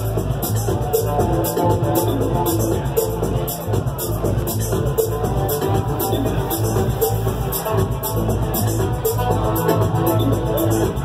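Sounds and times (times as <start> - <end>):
continuous bass line: 0.0 - 11.0
progressive house music: 0.0 - 11.0.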